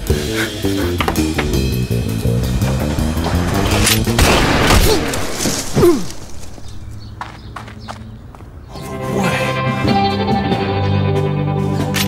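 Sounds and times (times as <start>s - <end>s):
running footsteps on paving: 5.4s - 8.7s.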